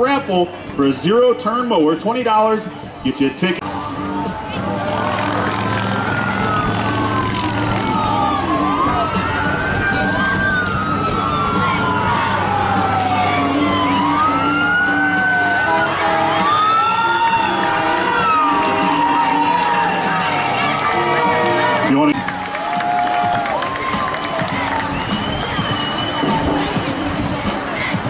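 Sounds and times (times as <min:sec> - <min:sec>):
sirens wailing: 0:03.6 - 0:28.0.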